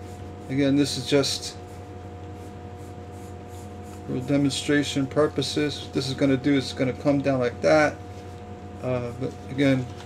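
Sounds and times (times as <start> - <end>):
pencil scratching on paper: 0.0 - 4.6
steady background hum: 0.0 - 10.0.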